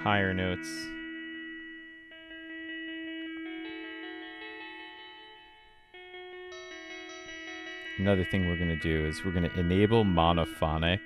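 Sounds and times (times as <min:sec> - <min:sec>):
sampled guitar notes: 0:00.0 - 0:11.0.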